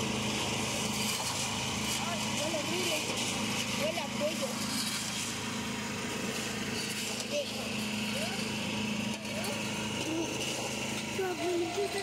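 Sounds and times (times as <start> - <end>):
small engine running: 0.0 - 12.0
men talking: 11.0 - 12.0.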